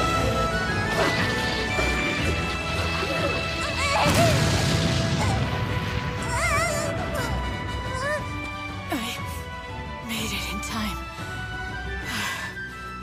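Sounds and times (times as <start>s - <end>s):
sustained music: 0.0s - 13.0s
cartoon explosion and crash effects: 3.8s - 7.4s.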